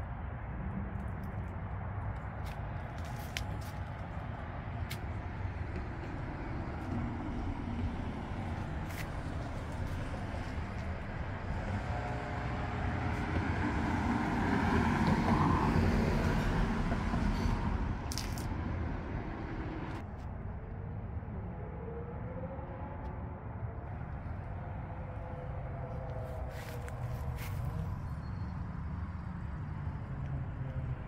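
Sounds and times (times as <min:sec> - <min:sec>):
motor vehicle passing: 0:02.4 - 0:23.0, 0:23.8 - 0:31.0.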